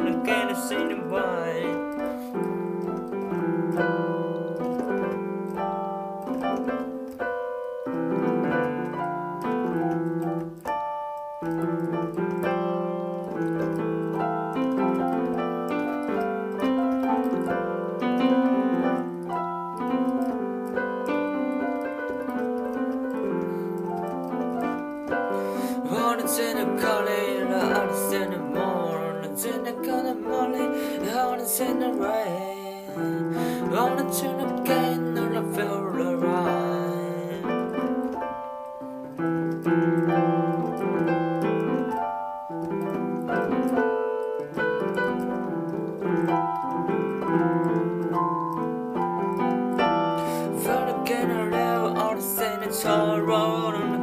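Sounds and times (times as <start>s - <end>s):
keyboard playing chords and melody: 0.0s - 54.0s.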